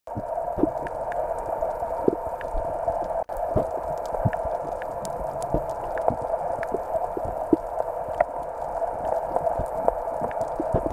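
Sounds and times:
muffled underwater hiss: 0.1 - 10.9.

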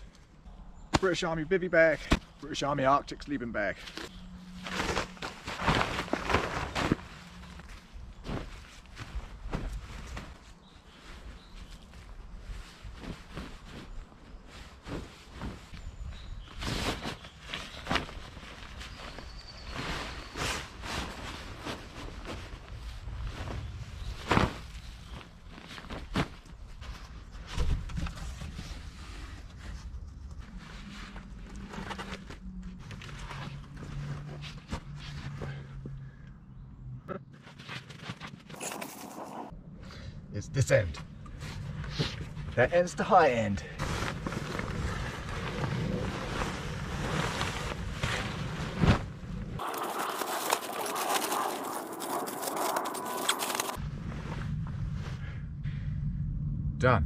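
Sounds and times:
bivvy bag rustling and crinkling: 3.9 - 29.8, 37.4 - 39.5, 43.8 - 53.8
footsteps crunching on dry leaves: 49.6 - 53.8.

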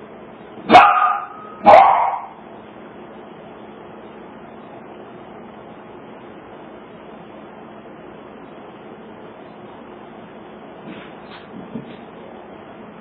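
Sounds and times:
small dog barking: 0.7 - 2.4.

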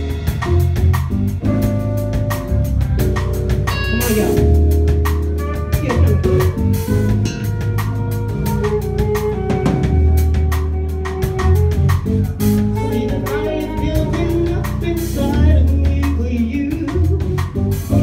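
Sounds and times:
drum kit: 0.0 - 18.0
steady bass line: 0.0 - 18.0
woman singing into a microphone: 12.8 - 17.2.

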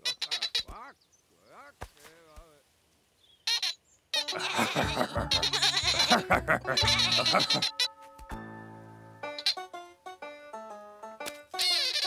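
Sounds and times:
cartoon sheep bleating: 4.2 - 7.9
background music: 4.2 - 12.0
held musical chord: 6.4 - 11.2.

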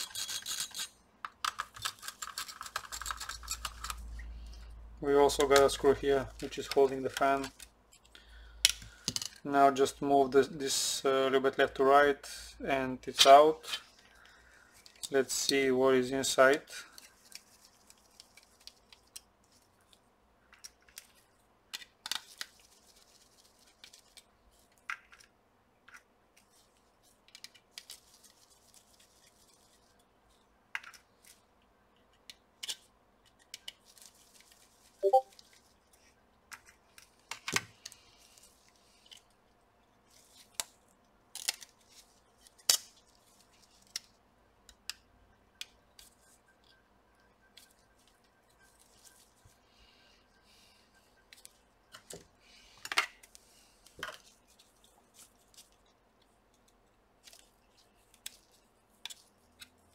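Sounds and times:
screwdriver clicks and scrapes: 0.0 - 4.0.

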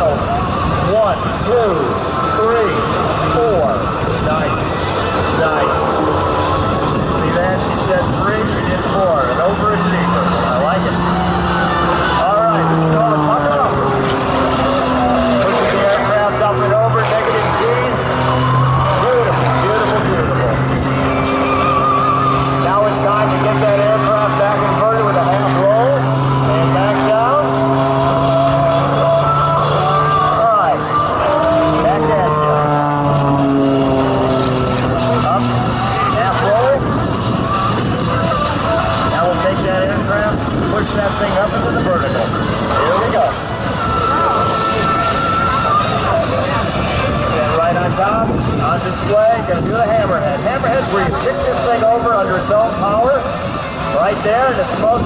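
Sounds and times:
propeller plane engine drone: 0.0 - 55.0
spectators chattering: 0.0 - 55.0.

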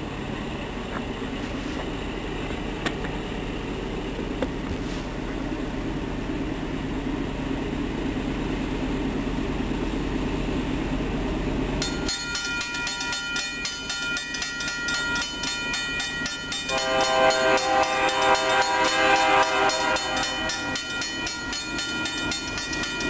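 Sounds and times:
diesel locomotive rumble: 0.0 - 23.0
bell ringing rapidly: 11.8 - 23.0.

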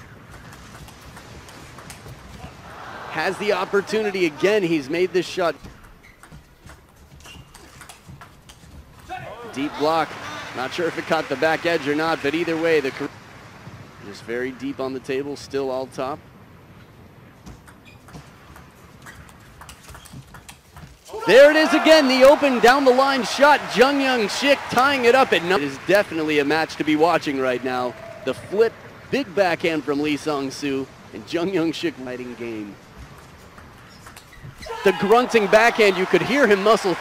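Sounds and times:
man commentating: 2.7 - 5.6, 9.1 - 13.1, 21.1 - 32.8, 34.7 - 37.0
table tennis ball clicking: 5.6 - 8.8.

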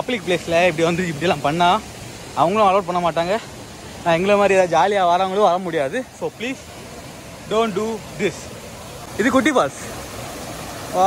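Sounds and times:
water rushing over rocks: 0.0 - 11.0.

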